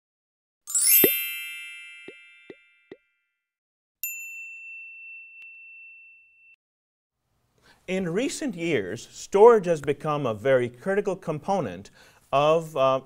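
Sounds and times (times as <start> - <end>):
shimmering multi-note chime: 0.7 - 2.5
high ding: 0.7 - 2.8, 4.0 - 6.6.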